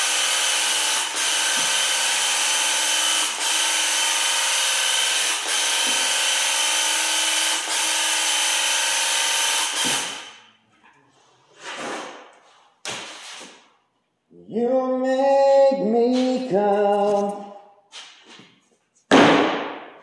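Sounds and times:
paint sprayer buzzing whine: 0:00.0 - 0:10.4.

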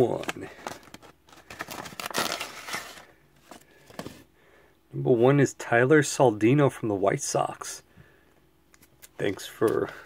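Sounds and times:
paper envelope rustling: 0:00.0 - 0:04.2.

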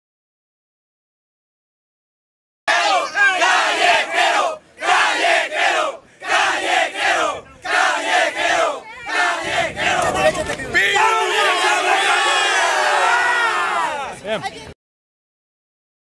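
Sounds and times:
crowd of men shouting and chanting: 0:02.7 - 0:14.2.

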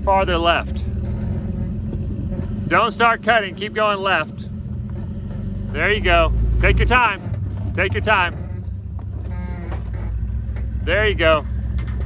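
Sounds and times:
engine low rumble: 0:00.0 - 0:12.0.

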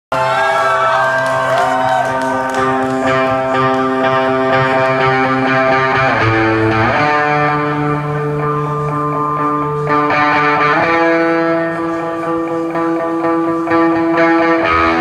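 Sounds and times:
live rock band chords: 0:01.6 - 0:15.0.

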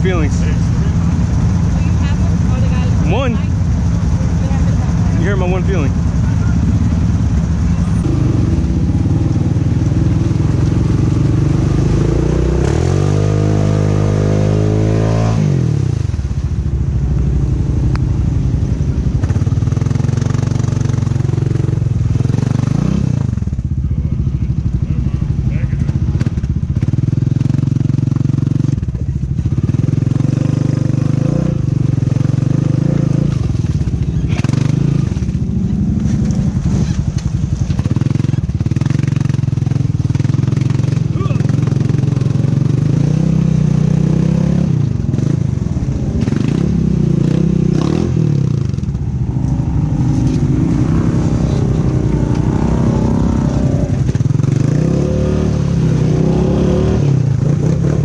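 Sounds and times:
atv engine revving: 0:00.0 - 0:58.0.

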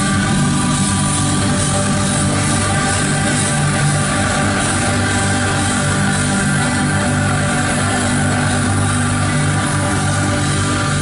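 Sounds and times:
drums and cymbals crashing: 0:00.0 - 0:11.0
electric guitars and bass ringing: 0:00.0 - 0:11.0.

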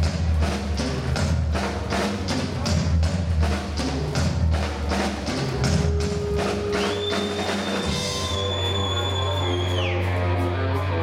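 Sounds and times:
drum kit strokes: 0:00.0 - 0:11.0.

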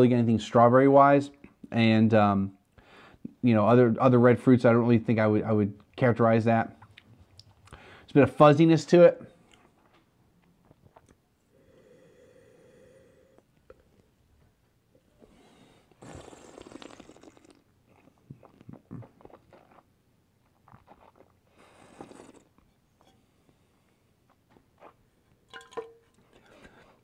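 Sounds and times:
person sipping wine: 0:15.0 - 0:19.9, 0:20.6 - 0:23.7.

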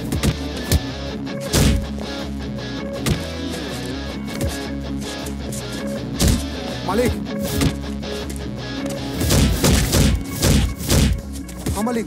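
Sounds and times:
action film score: 0:00.0 - 0:12.0
punch impact effects: 0:01.5 - 0:01.9, 0:06.2 - 0:06.5, 0:09.2 - 0:11.2.

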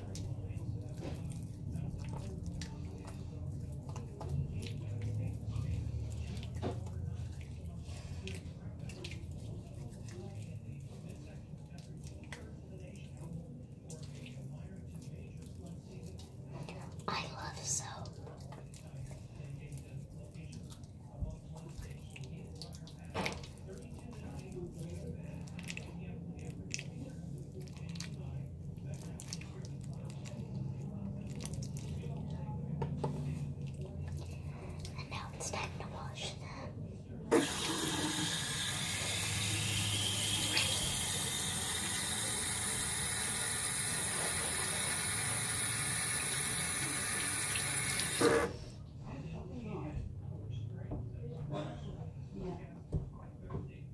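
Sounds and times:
soapy hands rubbing: 0:37.3 - 0:48.5
water running into sink: 0:37.3 - 0:48.6.

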